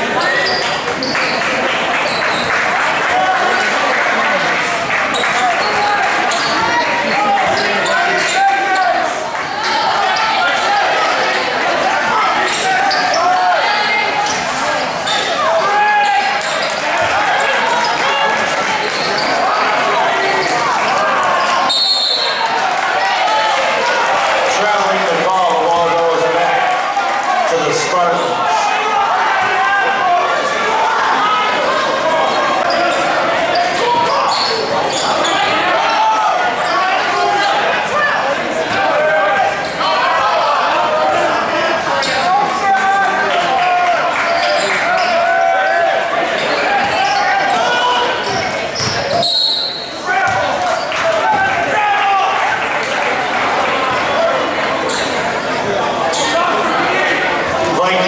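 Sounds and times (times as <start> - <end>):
crowd chatter and shouting: 0.0 - 58.0
referee's whistle: 21.7 - 22.4, 48.8 - 50.1.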